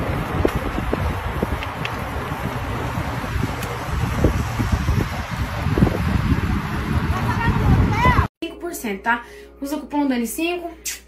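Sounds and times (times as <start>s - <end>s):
wind buffeting microphone: 0.0s - 8.3s.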